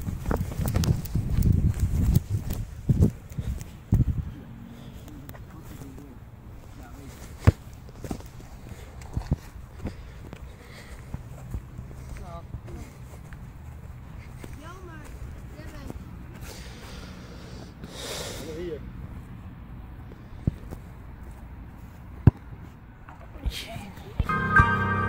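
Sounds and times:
wind rumble on microphone: 0.0s - 4.6s
football kicked on grass: 7.2s - 8.3s, 22.2s - 22.6s.

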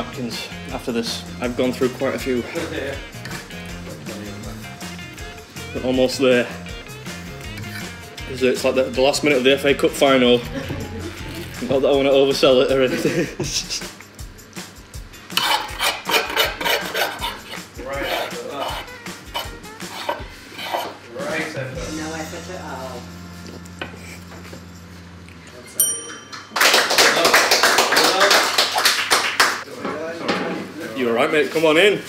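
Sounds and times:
background music: 0.0s - 25.0s
fork scraping on wooden board: 7.5s - 8.1s, 15.3s - 21.0s
bright ping: 25.8s - 26.6s.

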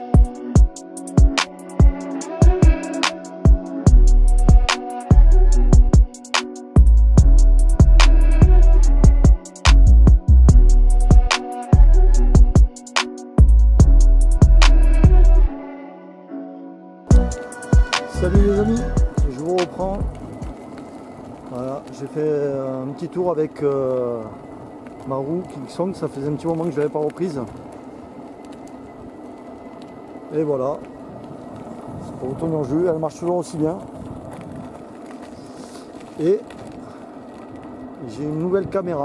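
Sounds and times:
wind on microphone: 6.8s - 12.8s, 17.1s - 39.0s
man's voice: 17.1s - 20.5s
wheel rolling noise: 17.1s - 39.0s
person speaking: 18.0s - 20.5s.

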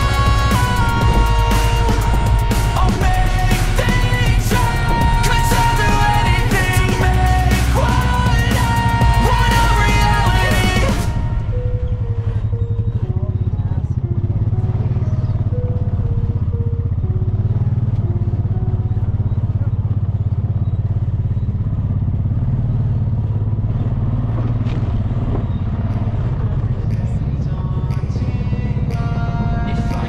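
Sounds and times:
quad bike engine running: 0.0s - 30.0s.

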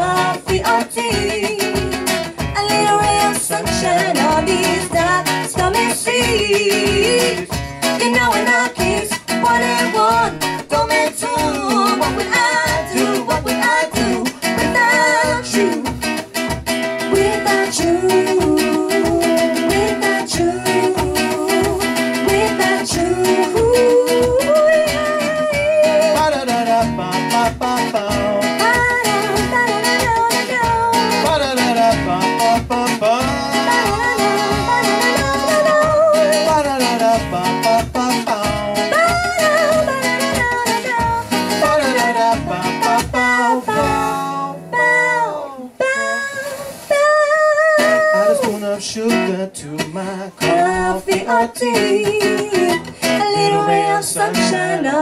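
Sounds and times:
man singing: 0.0s - 16.0s, 17.1s - 46.8s, 47.7s - 55.0s
woman singing: 0.0s - 16.2s, 17.0s - 49.0s, 49.6s - 55.0s
acoustic guitar strummed: 0.0s - 55.0s.

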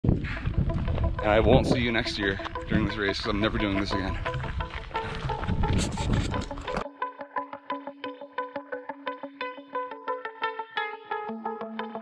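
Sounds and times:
sharply picked background music: 0.6s - 9.8s
outdoor camera noise: 4.2s - 6.8s.

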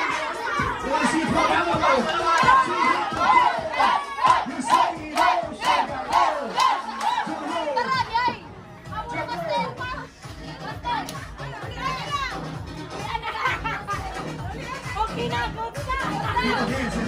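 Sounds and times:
group chanting and shouting: 0.0s - 17.0s.

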